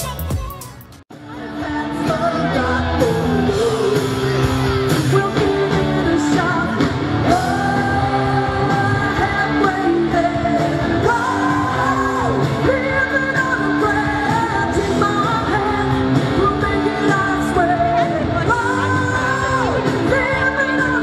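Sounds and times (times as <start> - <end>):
live pop-rock band: 0.0 - 21.0.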